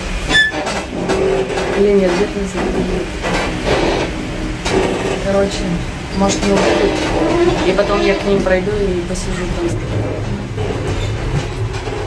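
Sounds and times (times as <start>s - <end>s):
train rumble and rattle: 0.0s - 12.0s.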